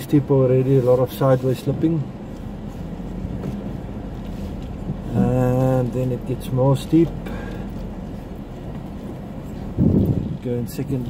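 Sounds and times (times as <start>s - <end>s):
engine and tyres rumbling on sand: 0.0s - 11.0s.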